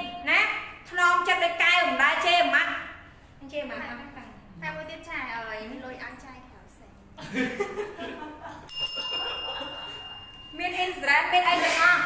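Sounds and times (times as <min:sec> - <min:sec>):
high-pitched ringing tone: 0:08.7 - 0:11.4.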